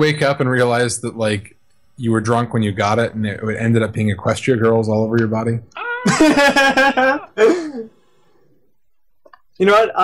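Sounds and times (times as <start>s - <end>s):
man's loud vocal outburst: 5.7s - 6.2s
man laughing: 5.8s - 7.9s.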